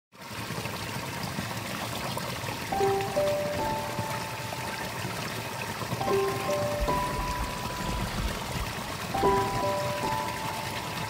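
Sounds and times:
water pouring into a pool: 0.1 - 11.0.

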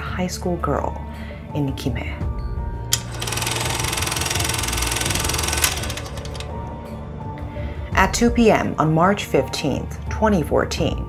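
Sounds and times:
low droning music: 0.0 - 11.0
film projector clatter: 3.0 - 6.6.

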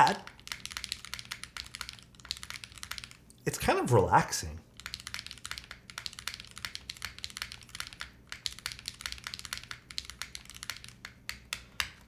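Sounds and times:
fast typing on mechanical keyboard: 0.0 - 3.2, 4.7 - 12.0.

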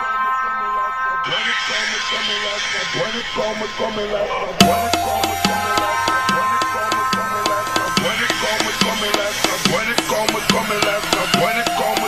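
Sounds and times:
dubstep synth tones: 4.6 - 12.0
sampled voice: 4.6 - 12.0.

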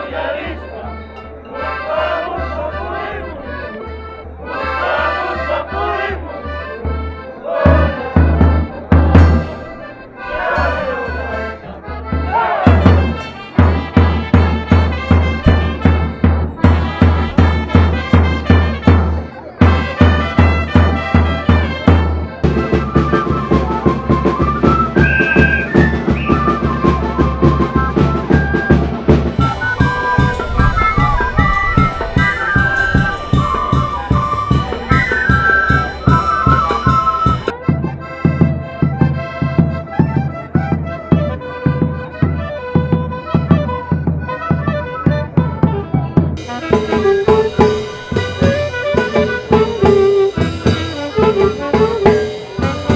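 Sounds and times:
wind instrument melody: 0.0 - 52.9
steady drum beat: 12.5 - 37.6, 46.3 - 52.9.

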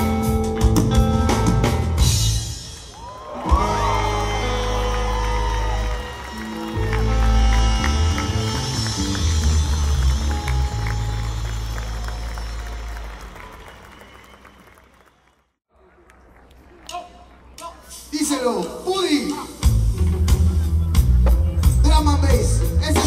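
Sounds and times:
live rock band over pa: 0.0 - 12.8, 17.9 - 23.0
crowd applause: 2.8 - 16.5.

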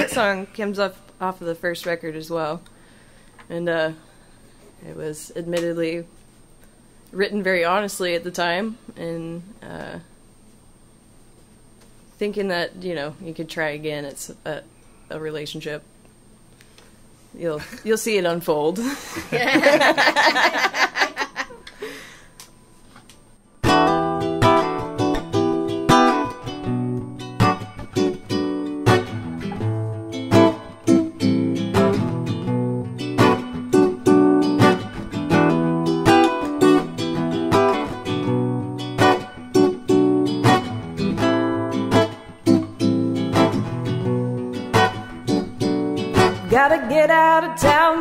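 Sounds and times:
acoustic guitar strumming: 23.6 - 48.0
woman singing: 46.3 - 48.0.

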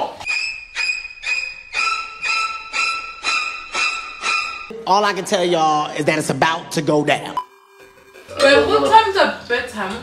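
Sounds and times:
suspense music ringing notes: 0.8 - 5.6.

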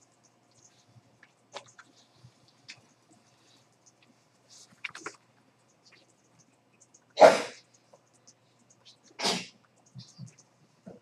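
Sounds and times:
person sneezing: 7.2 - 7.6, 9.2 - 9.5.

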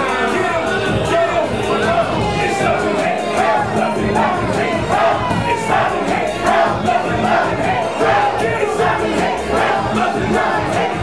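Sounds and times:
crowd shouting along: 0.0 - 11.0
loud backing beat: 0.0 - 11.0
person rapping into a microphone: 0.0 - 11.0.

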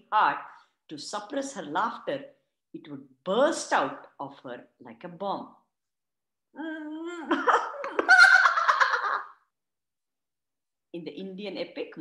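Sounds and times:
woman stifling laughter: 7.2 - 9.3.

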